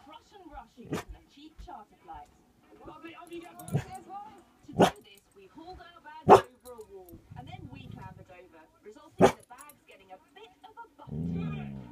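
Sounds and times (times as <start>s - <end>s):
dog growling: 7.2s - 8.3s, 11.0s - 11.9s.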